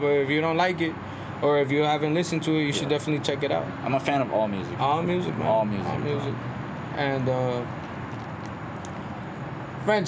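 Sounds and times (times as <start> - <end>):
distant traffic hum: 0.0 - 10.0.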